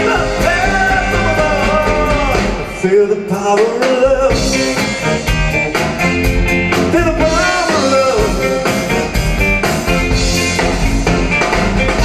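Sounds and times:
man singing: 0.0 - 5.3, 6.7 - 8.9
bass guitar: 0.0 - 12.0
drum kit: 0.0 - 12.0
electric guitars: 0.0 - 12.0.

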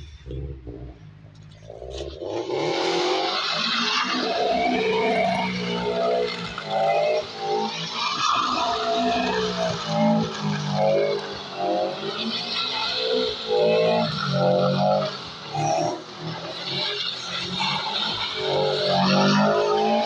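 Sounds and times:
car engine revving hard: 1.8 - 20.0.

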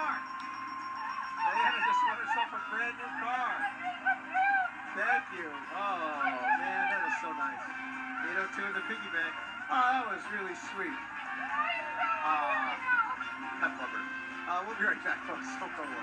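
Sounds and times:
game show music on television: 0.0 - 16.0.

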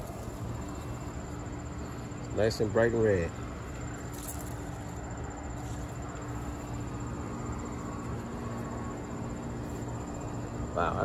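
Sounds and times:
faint hum: 0.0 - 11.0
high insect trill: 0.0 - 11.0.

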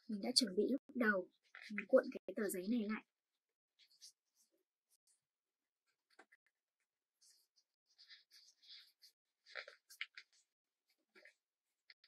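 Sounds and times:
paper rustling and crinkling: 7.2 - 12.0.

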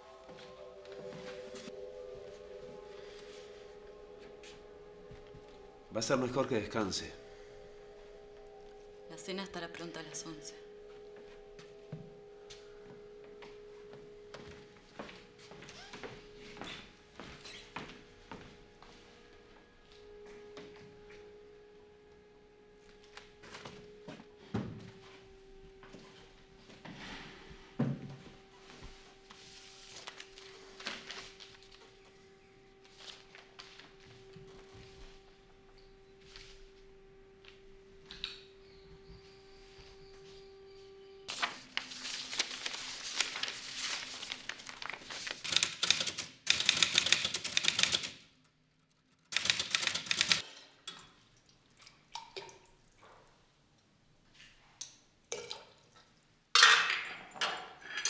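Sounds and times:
typewriter key strikes: 45.4 - 48.2, 49.3 - 50.4.

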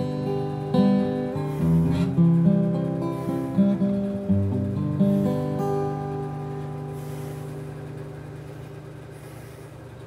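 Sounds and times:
acoustic guitar chord ringing: 0.0 - 9.6.

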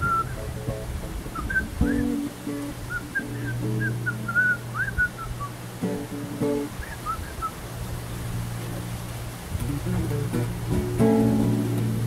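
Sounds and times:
whistled melody: 0.0 - 0.5, 1.3 - 7.6
acoustic guitar playing: 0.0 - 12.0.

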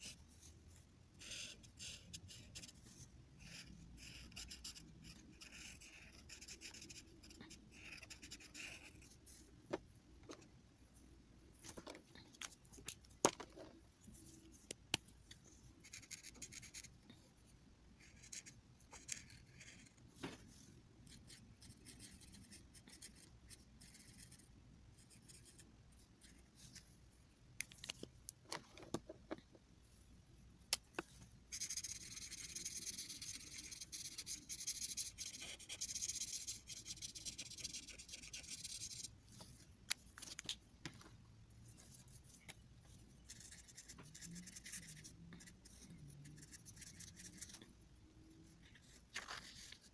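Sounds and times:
marker scratching on paper: 1.2 - 9.4, 15.8 - 16.9, 18.0 - 20.0, 21.0 - 26.8, 31.5 - 39.1, 41.7 - 47.7.

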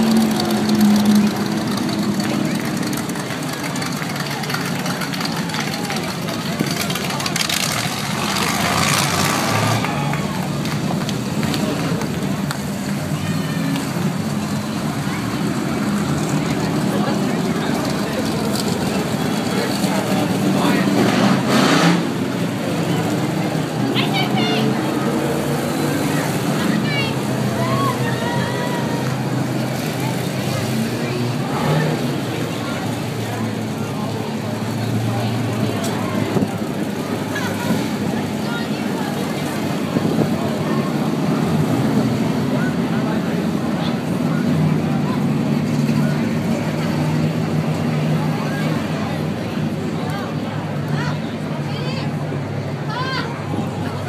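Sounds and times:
race car engines droning: 0.0 - 54.0.

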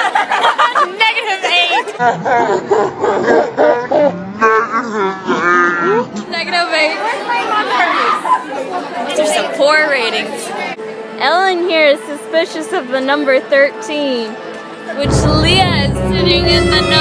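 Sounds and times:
young voices chattering and laughing: 0.0 - 2.7, 6.0 - 11.0.

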